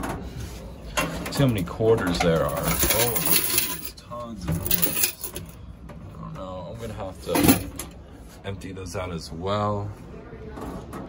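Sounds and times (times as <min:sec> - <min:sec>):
metal coin box handling: 0:02.4 - 0:03.9, 0:04.5 - 0:05.5.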